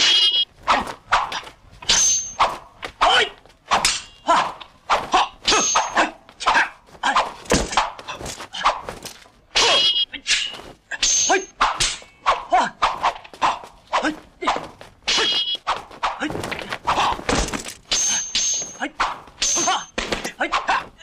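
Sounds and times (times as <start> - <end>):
metal blades clashing: 0.0 - 0.5, 1.1 - 16.3, 16.9 - 20.9
sword blows and swishes: 0.0 - 21.0
fighters shouting: 2.4 - 8.8, 10.9 - 17.3, 18.1 - 21.0.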